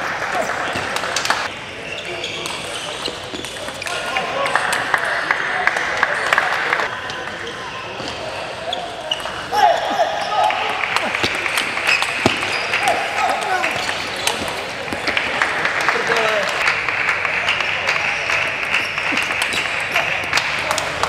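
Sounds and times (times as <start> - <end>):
voices in a hall: 0.0 - 21.0.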